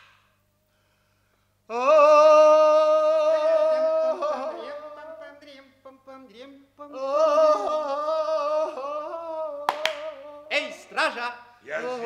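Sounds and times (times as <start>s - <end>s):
person singing with vibrato: 1.7s - 11.1s.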